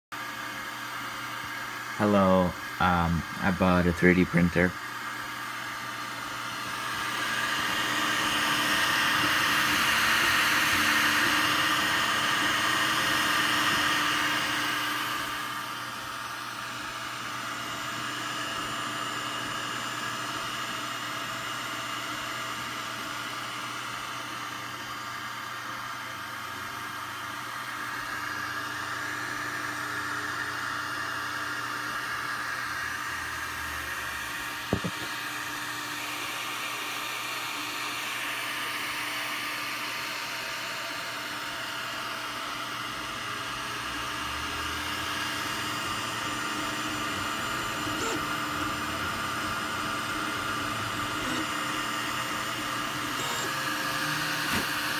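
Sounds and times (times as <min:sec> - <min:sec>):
cooling fans hissing: 0:00.2 - 0:54.9
stepper motors whining: 0:44.2 - 0:54.9.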